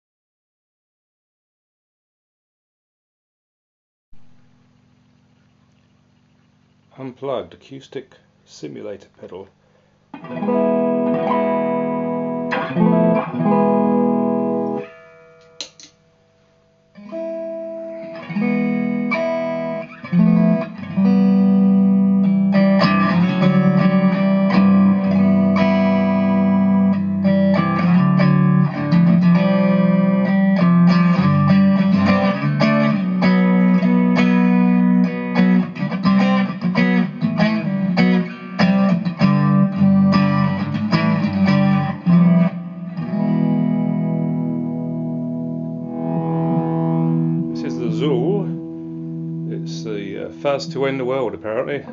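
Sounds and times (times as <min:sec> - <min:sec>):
electric guitar strumming chords: 0:10.1 - 0:51.9.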